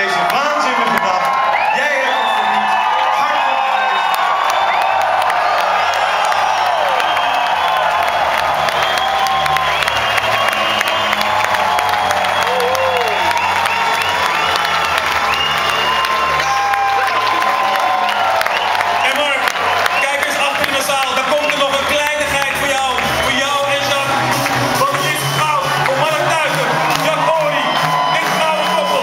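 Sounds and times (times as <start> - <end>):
crowd cheering and shouting: 0.0 - 29.0
music playing: 0.0 - 29.0.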